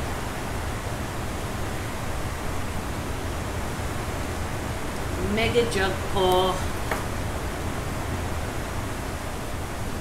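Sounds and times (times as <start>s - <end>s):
torrential rain: 0.0s - 10.0s.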